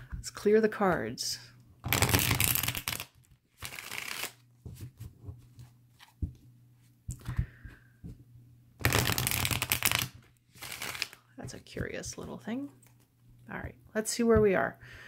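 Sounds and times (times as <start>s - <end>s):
cards riffling: 1.9s - 4.4s, 8.8s - 11.2s.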